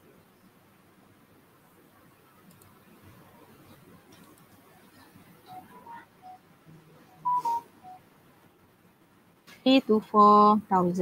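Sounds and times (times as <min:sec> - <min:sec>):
short electronic beeps: 0:07.1 - 0:08.0.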